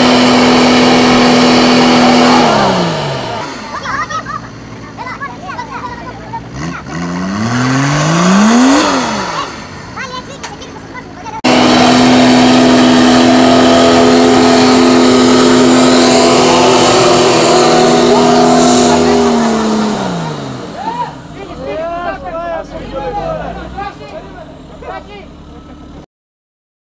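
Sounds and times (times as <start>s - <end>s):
engine revving: 0.0s - 26.0s
people calling out: 10.3s - 25.4s.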